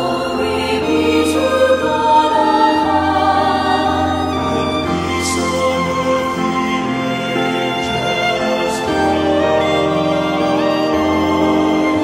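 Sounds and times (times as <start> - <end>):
mixed choir singing: 0.0 - 12.0
piano accompaniment: 0.0 - 12.0.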